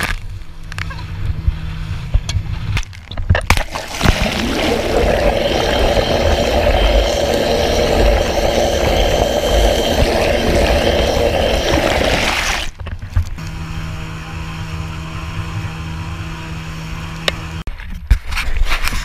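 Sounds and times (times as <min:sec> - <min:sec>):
outboard motor heard underwater: 0:03.5 - 0:12.8
outboard engine drone: 0:03.6 - 0:12.7.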